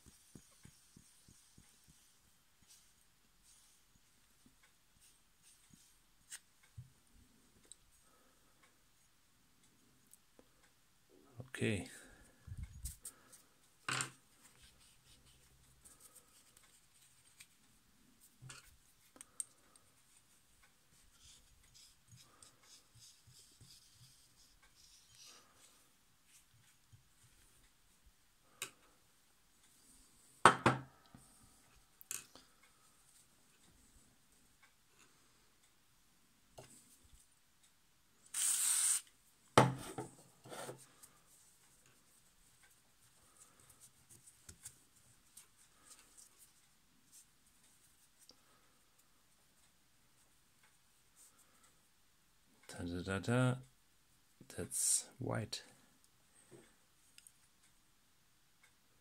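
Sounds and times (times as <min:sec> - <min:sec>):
short hiss: 0:38.3 - 0:39.1.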